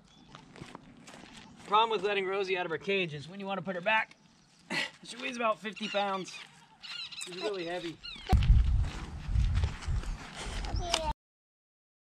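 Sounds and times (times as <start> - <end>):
footsteps on dry dirt: 0.0 - 2.7, 3.7 - 11.1
uneven low rumble: 8.3 - 10.2.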